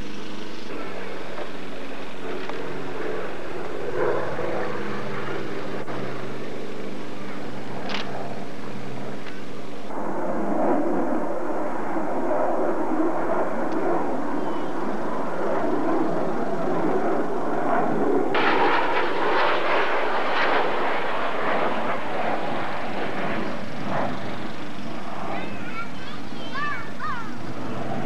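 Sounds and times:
jet fighter engine roar: 0.0s - 28.0s.

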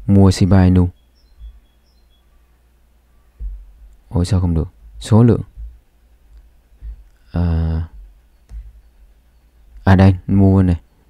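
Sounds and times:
steady low hum: 0.0s - 11.0s
faint high chirps: 0.6s - 11.0s
soft low bump: 1.3s - 1.8s, 3.3s - 10.0s.

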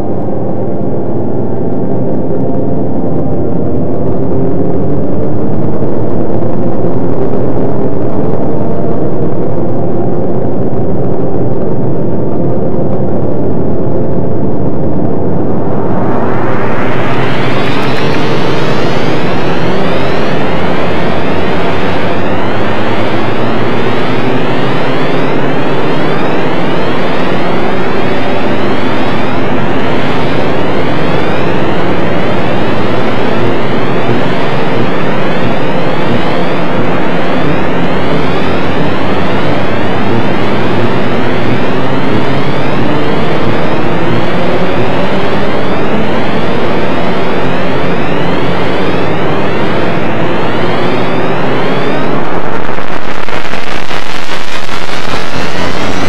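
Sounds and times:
electronic drone of gliding tones: 0.0s - 56.0s.

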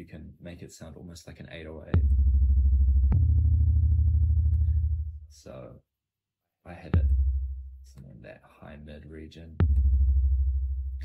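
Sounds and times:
booming synthesized kick drum: 2.0s - 5.2s, 7.0s - 7.8s, 9.6s - 11.0s.

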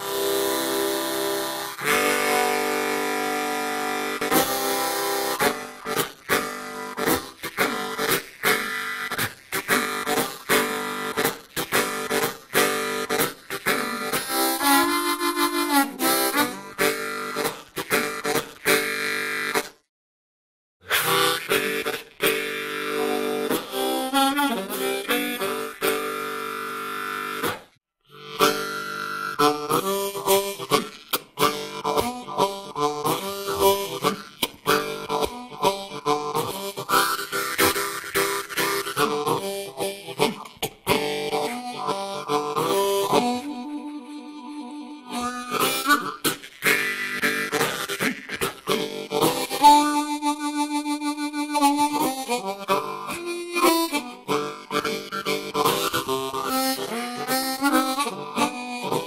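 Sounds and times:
blues harmonica playing: 0.0s - 19.8s, 20.9s - 59.0s.

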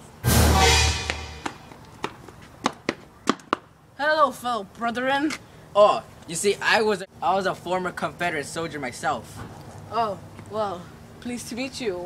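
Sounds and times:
deep boom music hit: 0.2s - 1.6s.

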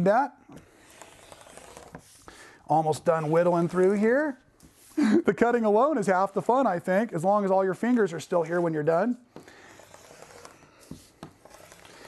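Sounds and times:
rotary cutter rasping through fabric: 0.6s - 2.2s, 9.5s - 12.0s.

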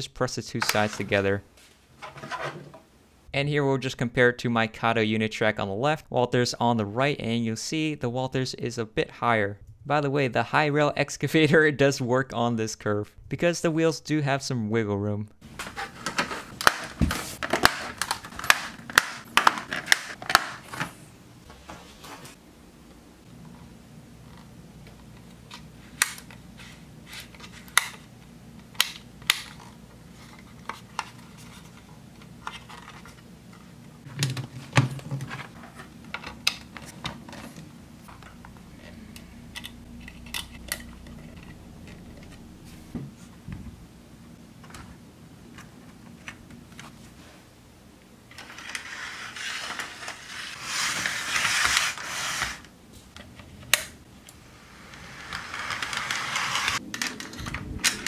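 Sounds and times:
faint steady hum: 0.0s - 58.0s
plastic track clicking together: 55.0s - 58.0s.

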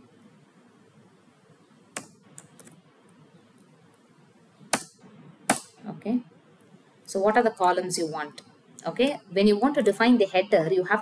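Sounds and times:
keyboard keystrokes: 2.0s - 2.8s.

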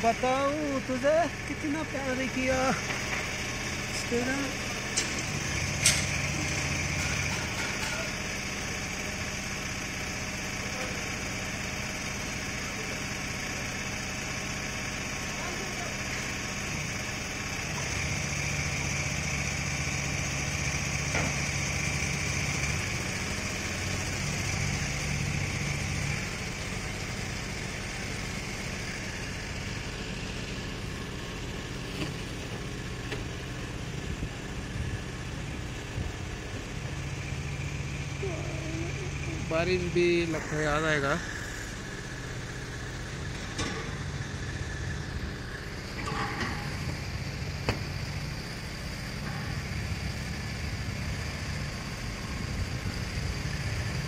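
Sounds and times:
engine running: 0.0s - 54.0s.

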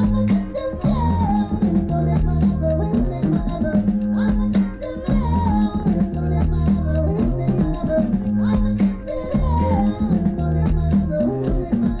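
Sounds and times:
bass line: 0.0s - 12.0s
drum strokes: 0.0s - 12.0s
live band music: 0.0s - 12.0s
person singing: 0.0s - 12.0s.

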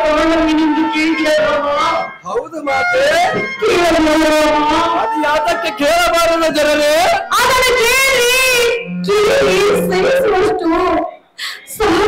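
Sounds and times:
high voice singing: 8.6s - 11.1s
low drone note: 8.7s - 10.9s.

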